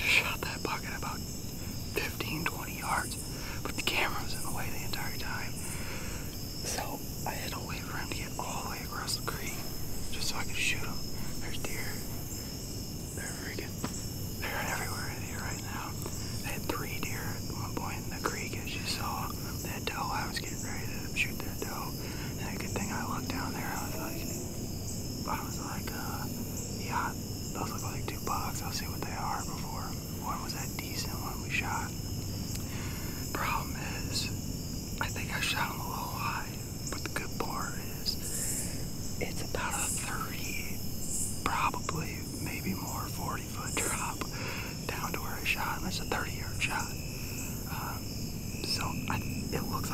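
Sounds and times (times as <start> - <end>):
man whispering: 0.0 - 12.4, 13.0 - 24.5, 25.1 - 49.9
high-pitched insect drone: 0.0 - 49.9.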